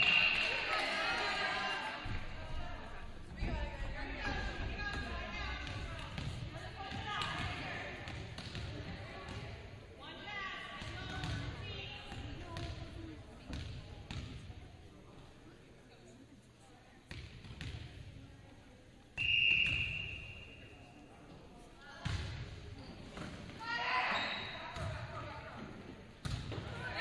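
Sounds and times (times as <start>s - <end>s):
referee's whistle blast: 0.0s - 0.7s, 19.2s - 20.6s.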